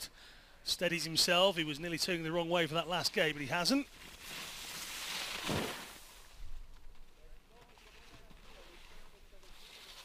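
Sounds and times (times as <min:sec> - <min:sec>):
ski edge scraping snow: 0:03.9 - 0:06.4.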